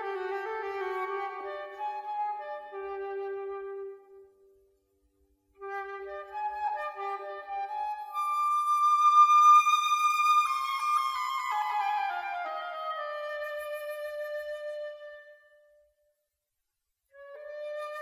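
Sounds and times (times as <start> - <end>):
solo flute playing: 0.0 - 4.6, 5.6 - 16.0, 17.1 - 18.0.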